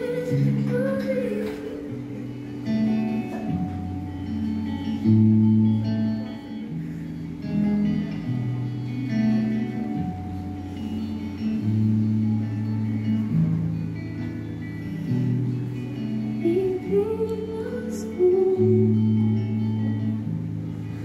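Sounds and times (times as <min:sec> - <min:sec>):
guitar chords: 0:00.0 - 0:21.0
held low bass notes: 0:00.0 - 0:21.0.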